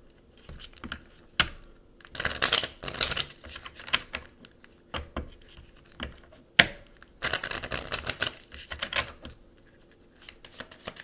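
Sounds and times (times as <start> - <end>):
cards clicking while shuffled: 0.4 - 11.0.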